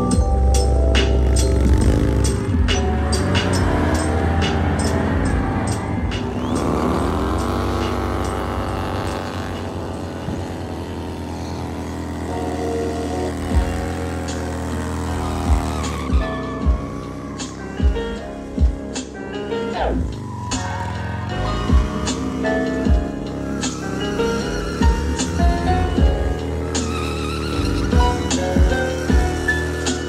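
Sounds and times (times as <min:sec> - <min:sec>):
motorcycle engines revving: 0:00.0 - 0:30.0
music track: 0:00.0 - 0:30.0.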